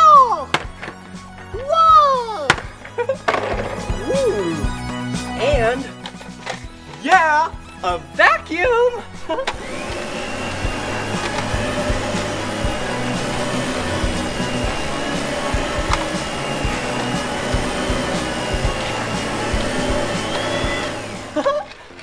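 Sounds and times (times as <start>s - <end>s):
background music: 0.0s - 22.0s
toy vacuum cleaner whirring: 2.4s - 6.8s, 9.0s - 22.0s.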